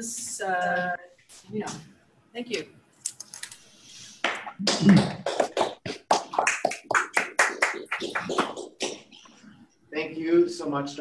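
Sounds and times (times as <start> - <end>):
audience applause: 4.3 - 9.0.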